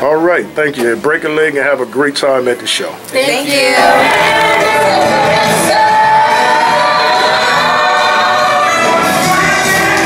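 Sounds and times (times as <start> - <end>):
group of voices singing: 3.4 - 10.0
band accompaniment: 3.8 - 10.0.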